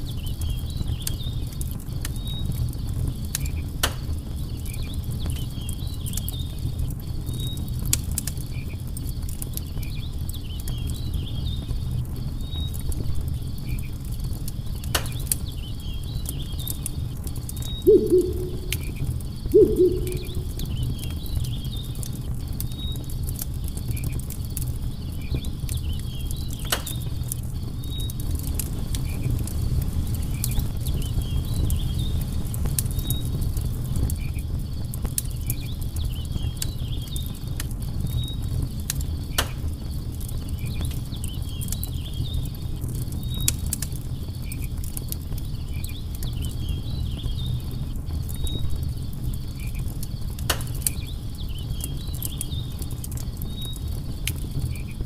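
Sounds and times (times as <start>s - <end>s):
campfire crackling: 0.0s - 55.0s
fire popping: 0.5s - 11.0s, 11.8s - 55.0s
low hooting bird notes: 17.8s - 21.0s
insects chirping: 17.9s - 20.8s.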